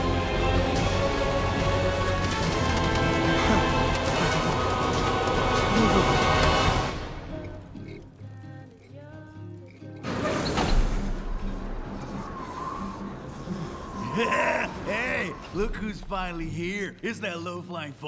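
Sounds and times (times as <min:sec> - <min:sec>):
film soundtrack music: 0:00.0 - 0:18.0.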